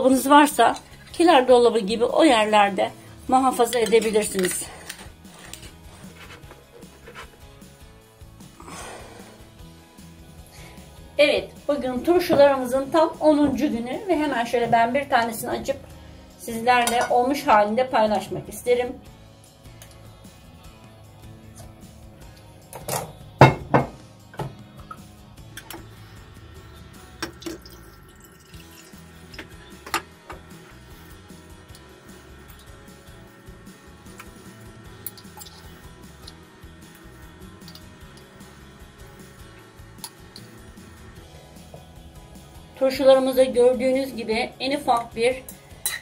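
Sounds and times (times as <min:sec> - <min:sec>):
quiet background music: 0:00.0 - 0:46.0
cutlery clinking on glass jar: 0:45.5 - 0:46.0.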